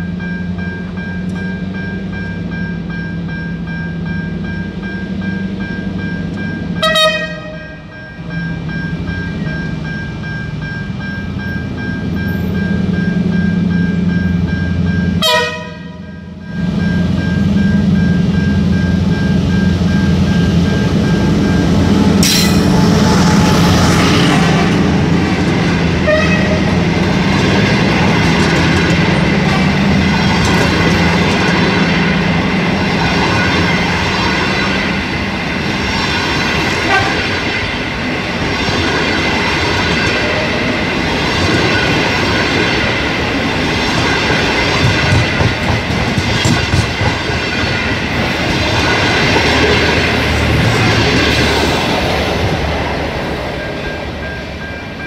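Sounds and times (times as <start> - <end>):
steady high-pitched tone: 0.0 - 15.2, 16.0 - 26.0
low locomotive engine hum: 0.0 - 55.0
train coaches clattering over rails: 0.0 - 55.0.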